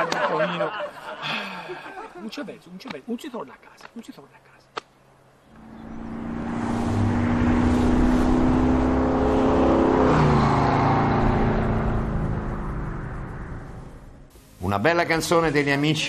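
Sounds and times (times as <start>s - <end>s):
whooshing transition effect: 5.5s - 14.3s.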